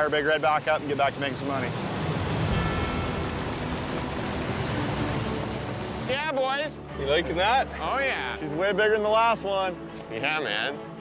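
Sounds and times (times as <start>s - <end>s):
water gushing into a pond: 0.0s - 6.2s.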